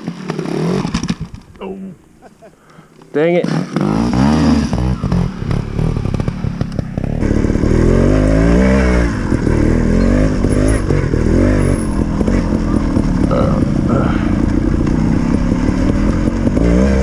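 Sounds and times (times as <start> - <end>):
motorcycle engine revving: 0.0 - 1.7, 3.2 - 17.0.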